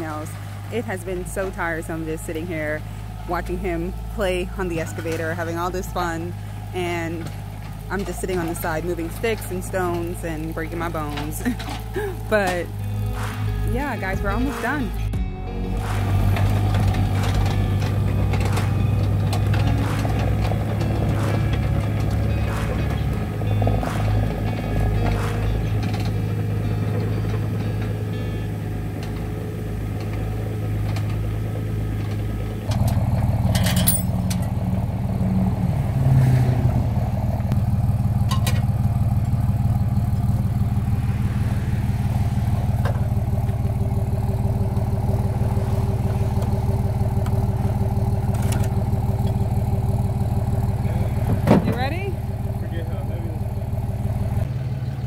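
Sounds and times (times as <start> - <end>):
excavator engine running: 0.0 - 55.0
pickup truck engine idling: 0.0 - 55.0.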